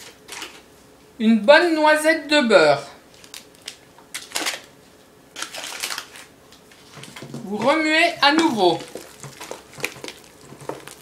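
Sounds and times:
foil wrapper crinkling: 0:03.1 - 0:07.7, 0:08.3 - 0:11.0.

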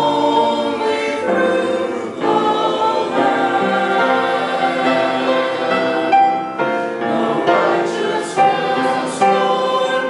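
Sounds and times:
mixed choir singing in harmony: 0:00.0 - 0:10.0.

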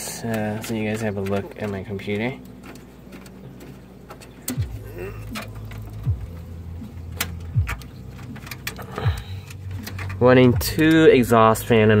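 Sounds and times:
computer case panel handling: 0:00.0 - 0:11.4
steady low hum: 0:00.0 - 0:12.0.

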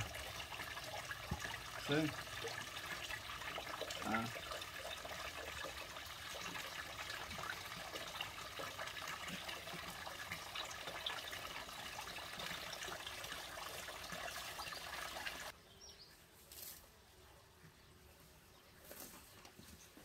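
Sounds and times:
water trickling: 0:00.0 - 0:15.5.

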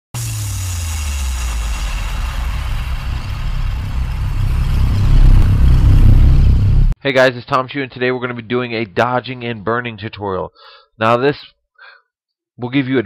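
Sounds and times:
deep rumbling whoosh: 0:01.3 - 0:07.0.

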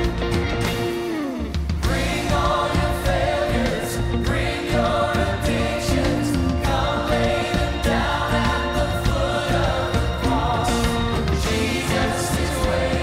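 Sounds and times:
live band playing: 0:00.0 - 0:13.0
people singing in harmony: 0:01.8 - 0:13.0.

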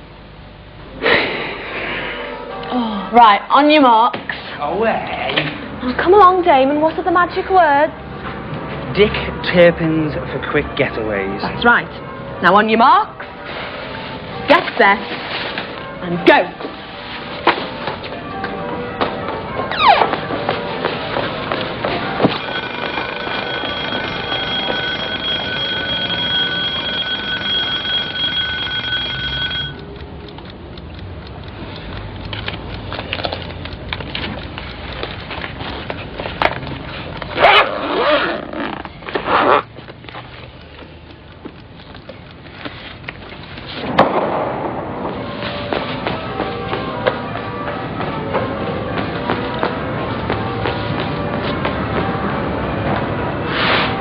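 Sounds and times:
alarm clock bell ringing: 0:22.2 - 0:29.9.

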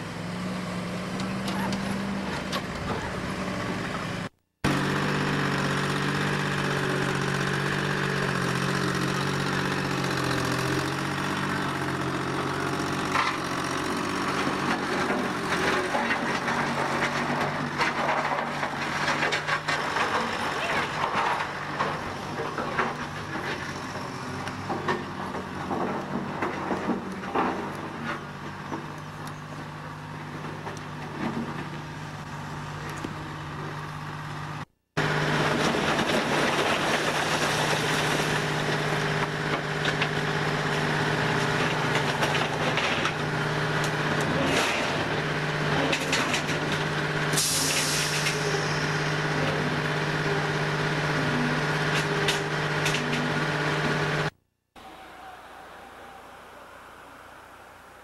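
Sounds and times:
bulldozer engine humming: 0:00.0 - 0:58.0
dump truck engine running: 0:00.0 - 0:58.0.

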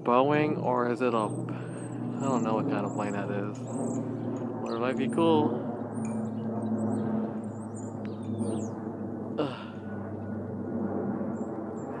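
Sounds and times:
propeller airplane droning overhead: 0:00.0 - 0:12.0.

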